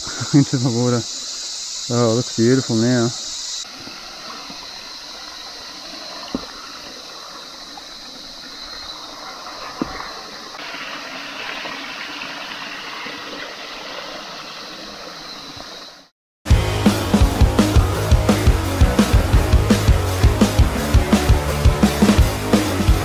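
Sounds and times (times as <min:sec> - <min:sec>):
creek water running over rocks: 0:00.0 - 0:16.1.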